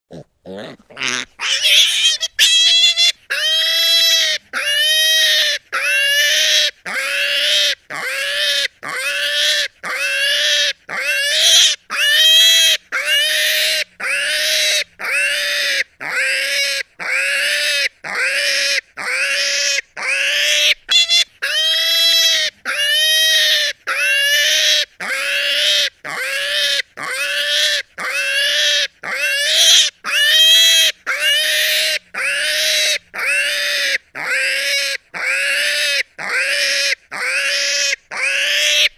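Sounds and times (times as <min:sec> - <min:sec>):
pig squealing: 0:00.1 - 0:38.9.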